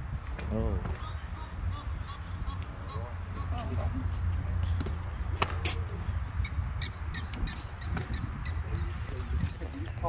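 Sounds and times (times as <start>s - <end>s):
bird chirping: 6.2s - 9.8s.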